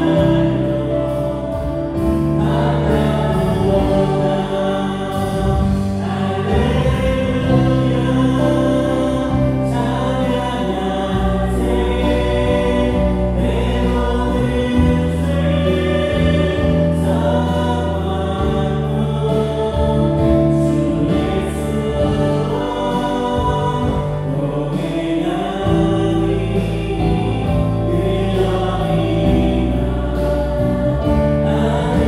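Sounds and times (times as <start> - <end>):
bass guitar: 0.0 - 32.0
drums: 0.0 - 32.0
electric guitar: 0.0 - 32.0
keyboards: 0.0 - 32.0
voices singing: 0.0 - 32.0.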